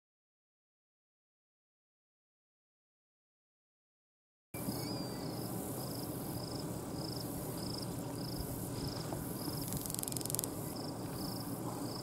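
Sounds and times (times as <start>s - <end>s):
low background noise: 4.6s - 12.0s
insect trilled chirps: 9.4s - 11.5s.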